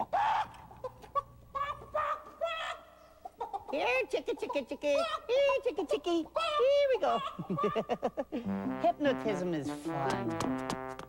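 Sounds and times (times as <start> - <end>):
cartoon chicken squawk: 0.0 - 0.5, 1.5 - 3.5
voices imitating chicken clucks: 0.0 - 8.2.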